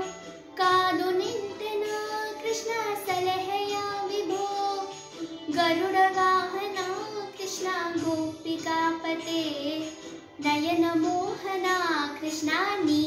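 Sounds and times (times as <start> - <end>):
girl singing devotional song: 0.0 - 13.0.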